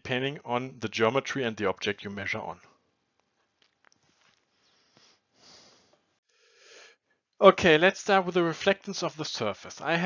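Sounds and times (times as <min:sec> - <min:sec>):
breath through the nose: 0:04.6 - 0:07.0.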